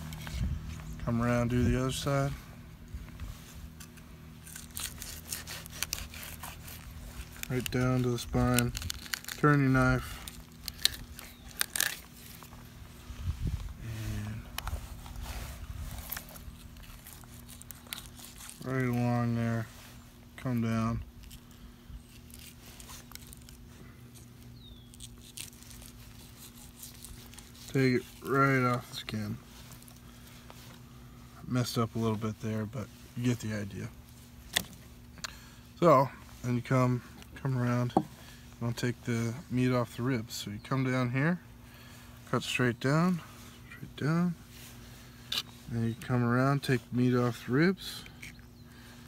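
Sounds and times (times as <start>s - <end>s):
low steady hum: 0.0s - 49.0s
knife scraping fish scales: 3.8s - 12.4s, 16.0s - 18.9s, 25.0s - 28.7s
knife scratching on cutting board: 4.8s - 7.4s.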